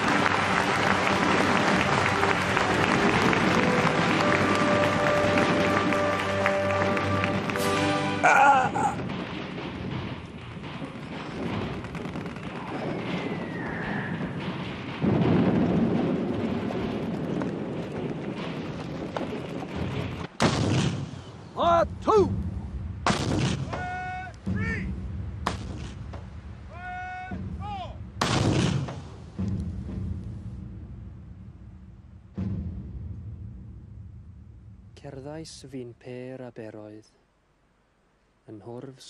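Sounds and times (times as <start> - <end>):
rumble of shellfire: 8.8 - 21.5, 22.3 - 26.7, 27.3 - 35.0
loud shell blasts: 8.9 - 21.4, 22.9 - 24.8, 28.2 - 29.6.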